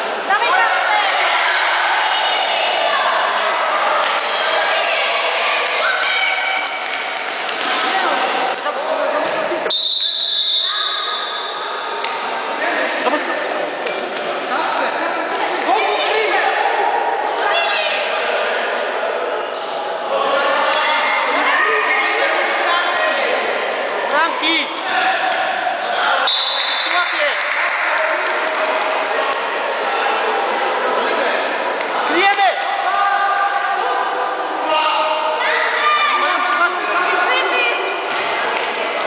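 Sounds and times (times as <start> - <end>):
echoing sports hall voices: 0.0 - 39.0.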